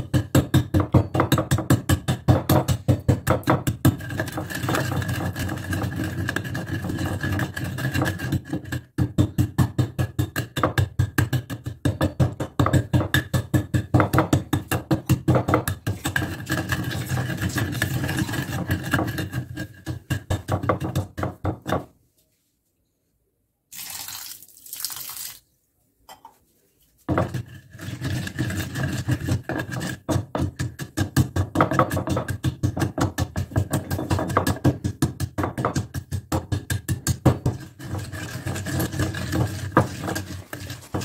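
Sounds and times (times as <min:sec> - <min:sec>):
pestle grinding in a mortar: 0:00.0 - 0:21.9, 0:27.1 - 0:41.0
pestle pounding strikes: 0:00.0 - 0:21.9, 0:28.6 - 0:41.0
water pouring into mortar: 0:23.7 - 0:25.5.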